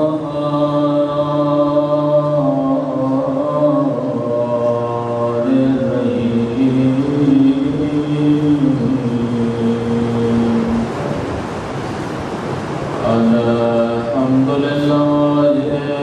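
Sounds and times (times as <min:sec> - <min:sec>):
man chanting religious recitation: 0:00.0 - 0:11.3, 0:13.0 - 0:16.0.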